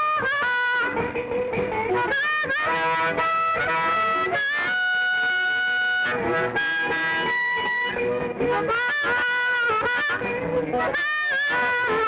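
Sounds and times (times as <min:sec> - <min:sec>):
electric blues band playing: 0:00.0 - 0:12.0
lead instrument bending long notes: 0:00.0 - 0:12.0.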